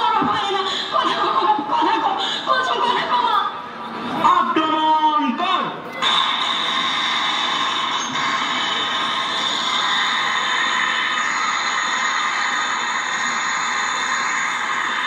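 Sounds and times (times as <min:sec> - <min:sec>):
high-pitched screeching drone: 0:06.0 - 0:15.0.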